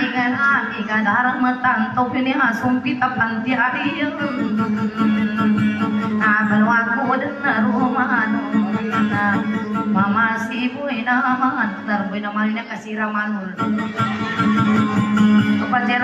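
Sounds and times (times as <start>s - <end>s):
plucked lute: 0.0s - 16.0s.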